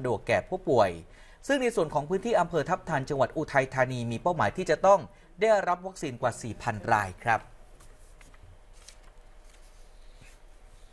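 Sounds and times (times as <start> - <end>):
man narrating: 0.0 - 7.6
soft rustles and clicks: 7.6 - 10.9.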